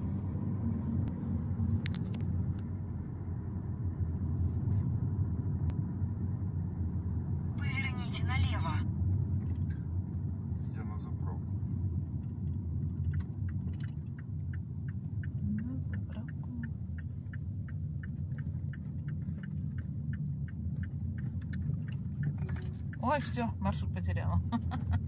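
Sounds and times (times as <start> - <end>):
car road and engine rumble: 0.0 - 25.0
turn signal clicking: 11.8 - 25.0.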